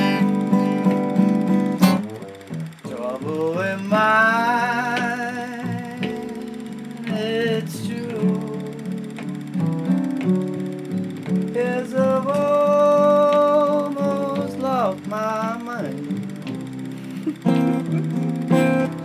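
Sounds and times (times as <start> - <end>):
acoustic blues guitar: 0.0 - 19.0.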